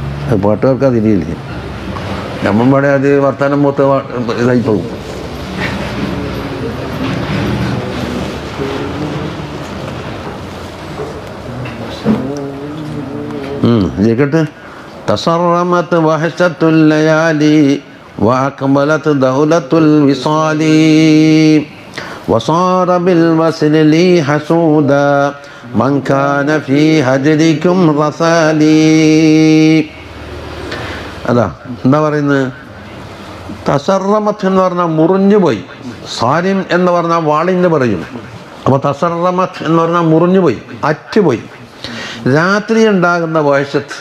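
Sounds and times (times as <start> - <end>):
steady background noise: 0.0 - 44.0
man chanting melodically: 2.3 - 44.0.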